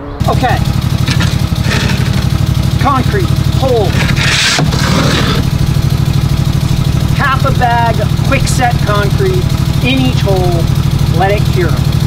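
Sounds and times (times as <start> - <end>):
tractor engine idling: 0.0 - 12.0
shovel scraping wet concrete: 0.3 - 2.6, 3.8 - 5.5.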